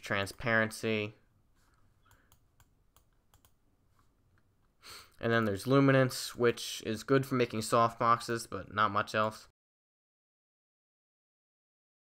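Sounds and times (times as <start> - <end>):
computer mouse clicks: 2.1 - 3.6.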